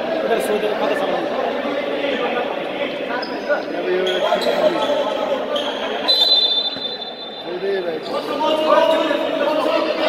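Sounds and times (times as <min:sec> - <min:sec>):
chatter of people in a hall: 0:00.0 - 0:10.0.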